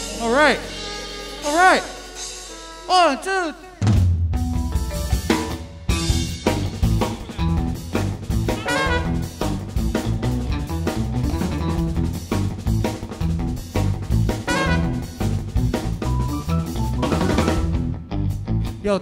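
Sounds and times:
electric bass line: 0.0s - 2.9s, 4.1s - 19.0s
horn phrase: 0.0s - 3.8s, 8.4s - 9.7s, 14.3s - 15.4s
drum kit: 0.0s - 18.6s.

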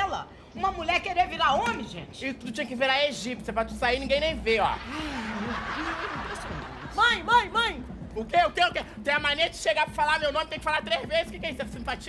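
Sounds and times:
audience laughing: 4.8s - 7.2s.

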